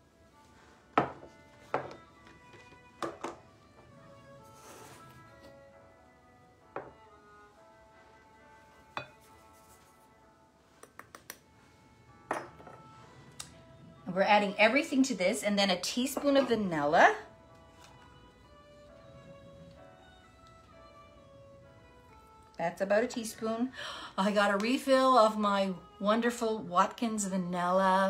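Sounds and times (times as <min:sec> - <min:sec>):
faint background music: 0:00.0 - 0:28.0.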